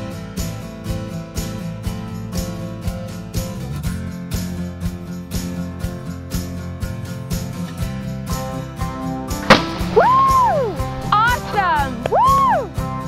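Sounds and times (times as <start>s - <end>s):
strummed acoustic guitar music: 0.0s - 13.0s
bottle rocket loud pop: 9.4s - 12.1s
whistling tones: 9.8s - 11.0s.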